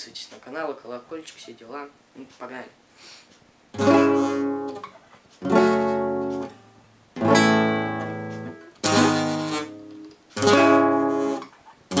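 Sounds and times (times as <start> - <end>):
classical guitar strumming chords: 3.7 - 12.0.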